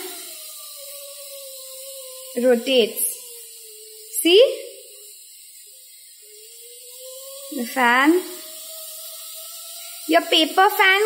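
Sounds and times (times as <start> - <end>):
steam hissing from pressure cooker: 0.0 - 11.0.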